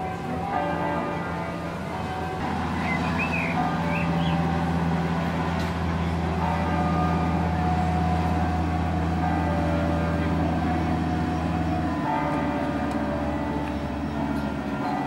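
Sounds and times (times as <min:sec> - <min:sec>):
boat engine drone: 0:00.0 - 0:15.0.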